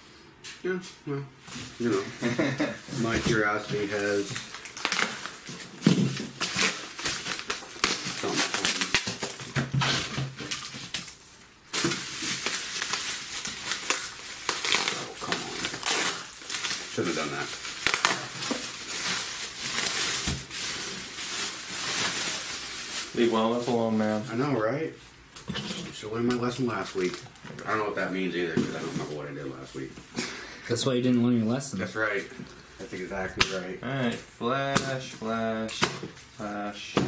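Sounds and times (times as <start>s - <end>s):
plastic wrap crinkling: 1.6s - 24.8s, 25.4s - 29.9s.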